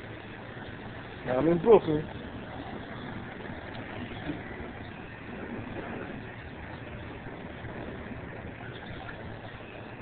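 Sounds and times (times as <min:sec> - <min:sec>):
city street traffic: 0:00.0 - 0:10.0.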